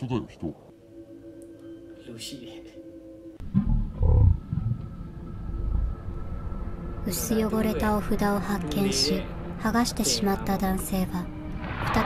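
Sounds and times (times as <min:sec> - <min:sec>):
deep low rumble: 0:03.4 - 0:06.1.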